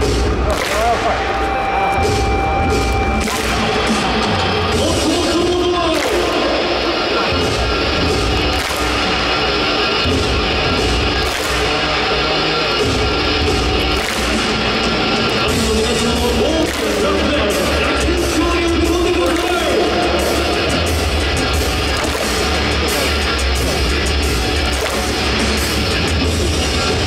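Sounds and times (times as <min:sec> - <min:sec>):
crowd clapping in unison: 0:00.0 - 0:27.0
loud music over sound system: 0:00.0 - 0:27.0.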